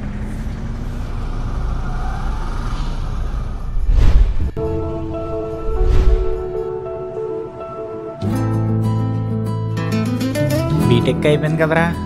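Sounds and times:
road traffic rumble: 0.0 - 8.2.

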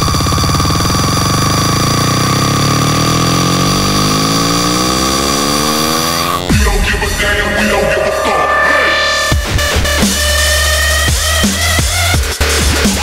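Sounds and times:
buzzy synth rising in pitch: 1.1 - 11.0
high sustained synth tones: 6.4 - 10.8.

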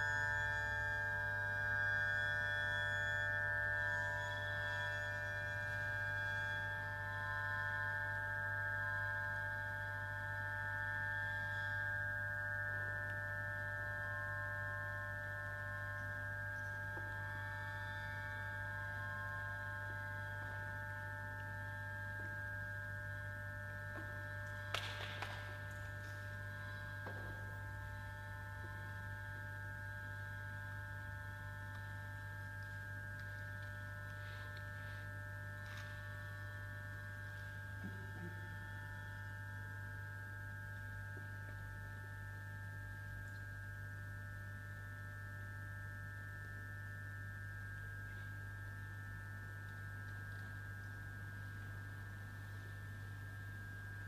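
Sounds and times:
low hum: 0.0 - 54.0
ringing high drone tones: 0.0 - 54.0.

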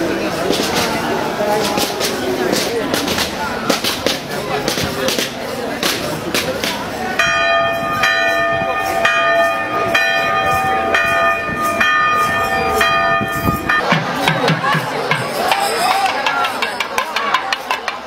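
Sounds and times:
crowd noise: 0.0 - 18.0
large temple bell ringing: 7.1 - 13.9.

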